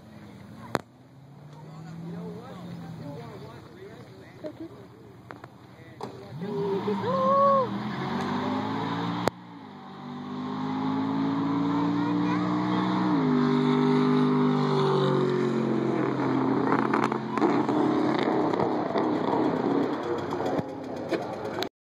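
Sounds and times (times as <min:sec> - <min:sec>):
car engine accelerating: 0:00.0 - 0:21.7.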